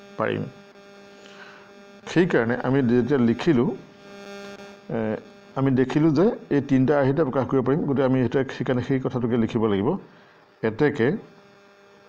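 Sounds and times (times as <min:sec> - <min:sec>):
steady electrical hum: 0:00.0 - 0:12.0
man speaking: 0:00.2 - 0:00.5, 0:02.1 - 0:03.8, 0:04.9 - 0:11.3.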